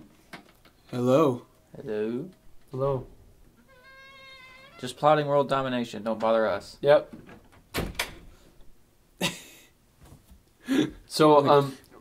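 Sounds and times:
door closing with a thud: 0:07.1 - 0:08.4.

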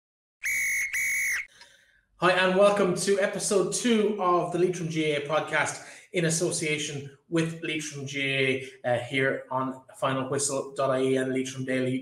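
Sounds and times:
referee's whistle blasts: 0:00.4 - 0:01.5.

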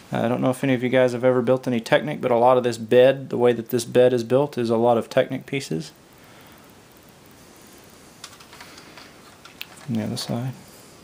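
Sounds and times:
plastic model handling noise: 0:08.2 - 0:10.3
light plastic clicks and rustles: 0:08.2 - 0:10.4.

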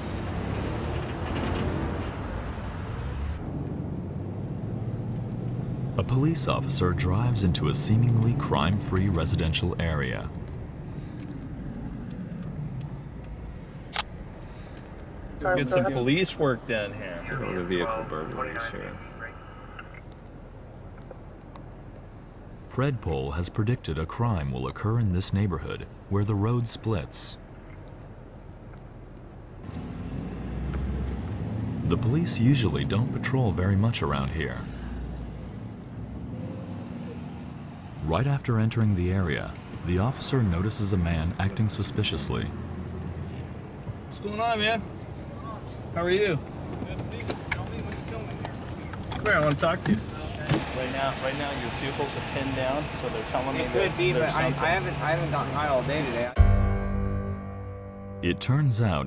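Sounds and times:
car engine and tyre rumble: 0:00.0 - 0:56.4.

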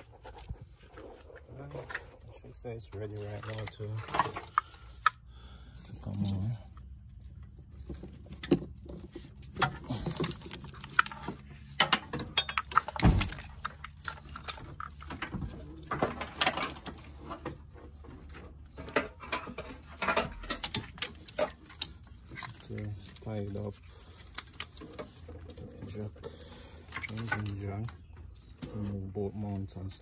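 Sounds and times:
hand tools clinking: 0:09.5 - 0:28.8.

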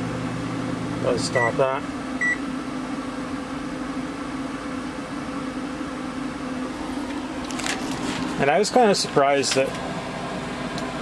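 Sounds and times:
furnace fan humming: 0:00.0 - 0:11.0
microwave beep: 0:01.3 - 0:02.5.

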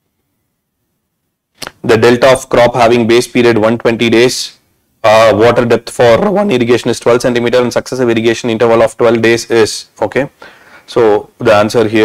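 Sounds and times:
man speaking: 0:01.6 - 0:12.0.

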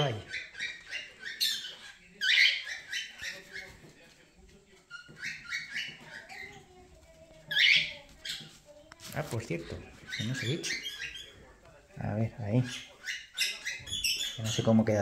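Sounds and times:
parrots chirping: 0:00.0 - 0:15.0.

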